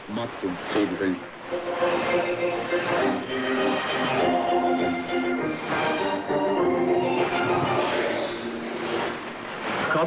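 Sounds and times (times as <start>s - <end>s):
radio music: 0.0s - 10.0s
static hiss: 0.0s - 10.0s.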